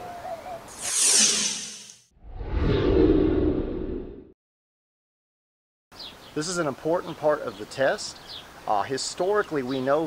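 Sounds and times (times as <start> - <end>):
low whooshing rumble: 2.2 - 4.3.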